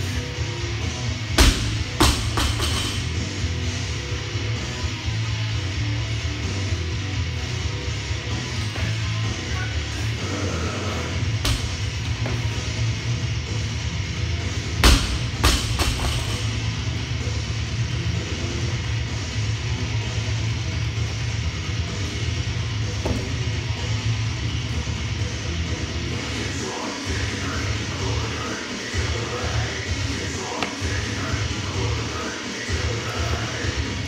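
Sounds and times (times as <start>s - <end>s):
rock music with guitar and drums: 0.0s - 34.0s
barbell dropped on rubber floor: 1.4s - 3.1s.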